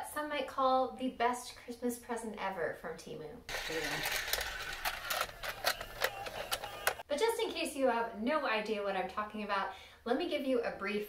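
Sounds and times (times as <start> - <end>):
toy figures clicking and rattling: 3.5 - 7.0.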